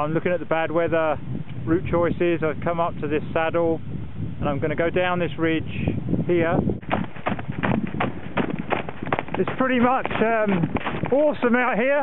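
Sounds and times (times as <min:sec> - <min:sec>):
running footsteps crunching in snow: 0:06.8 - 0:12.0.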